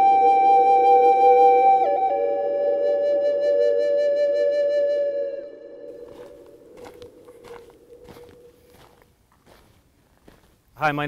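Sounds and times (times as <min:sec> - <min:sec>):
held music tone: 0:00.0 - 0:09.0
footsteps on gravel: 0:06.0 - 0:10.7.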